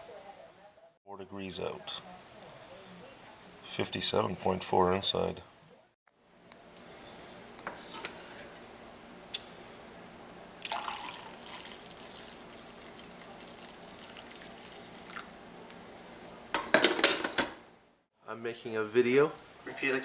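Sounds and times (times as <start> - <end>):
coffee pouring into mug: 10.6 - 15.3.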